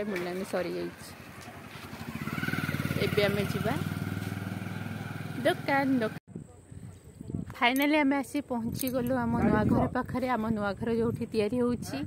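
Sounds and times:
motorcycle engine approaching: 0.0s - 6.2s
street traffic: 0.0s - 6.2s.

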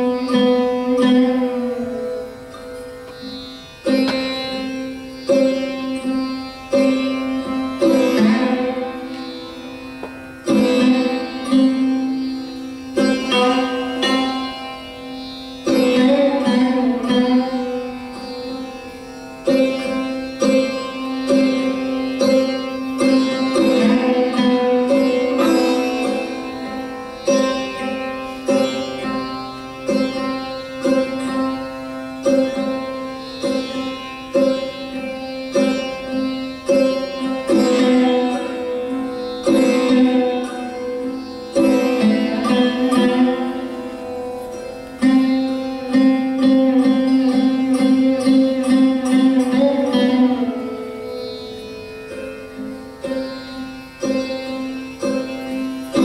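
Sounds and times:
sarod plucked notes: 0.0s - 56.0s.

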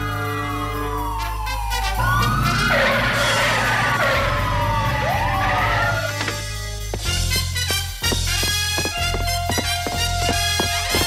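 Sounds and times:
police siren wailing: 0.0s - 6.6s
background music: 0.0s - 11.0s.

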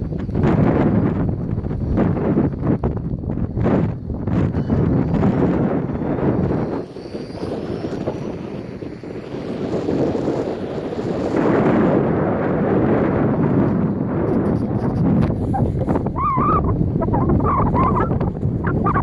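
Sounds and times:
wind buffeting microphone: 0.0s - 19.0s
rc car electric motor whine: 5.8s - 11.7s.

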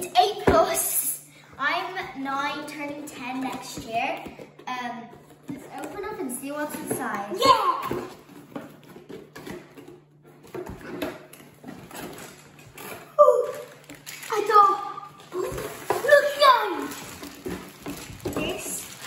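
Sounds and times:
cardboard and plastic handling: 3.4s - 19.0s.

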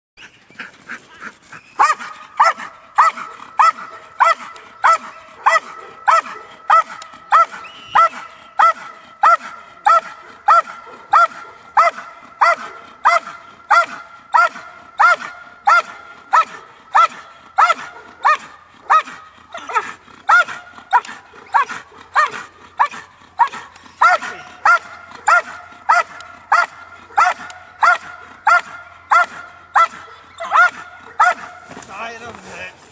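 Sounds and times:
dog barking rhythmically: 1.8s - 31.7s.

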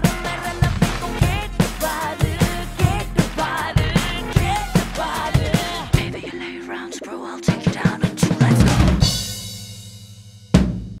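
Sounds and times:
cymbal crash: 9.0s - 11.0s.

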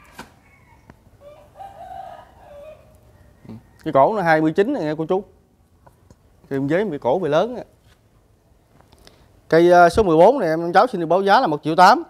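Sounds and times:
rooster crowing faintly: 0.0s - 4.4s.

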